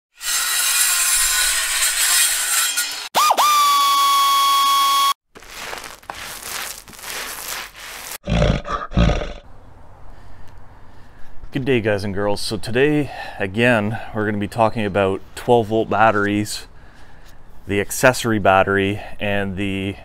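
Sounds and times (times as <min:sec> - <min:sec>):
rustling noise: 0:05.3 - 0:08.2
loud low grunts: 0:08.2 - 0:09.4.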